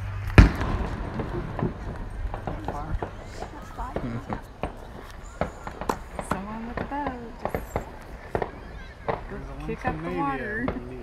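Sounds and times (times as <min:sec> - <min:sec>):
firework bang: 0:00.0 - 0:11.0
firework pops and crackles: 0:00.1 - 0:11.0.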